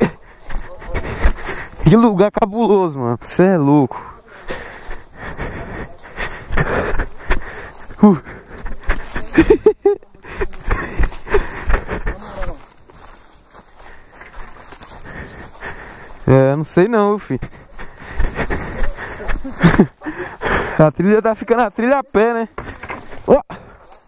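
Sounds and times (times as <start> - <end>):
footsteps on leaves and twigs: 0.0 - 2.5, 3.2 - 24.0.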